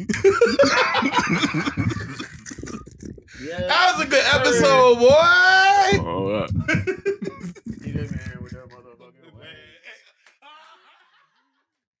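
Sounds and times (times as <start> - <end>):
person laughing: 0.0 - 3.0, 6.5 - 8.4.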